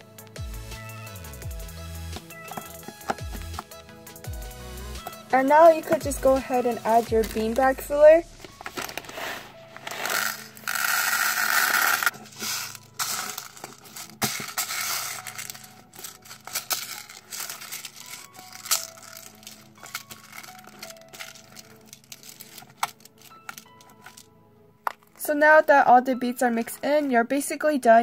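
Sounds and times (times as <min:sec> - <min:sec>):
soft background music: 0:00.0 - 0:28.0
beads pouring into plastic tub: 0:08.6 - 0:24.2
beads crackling in slime: 0:08.7 - 0:24.3.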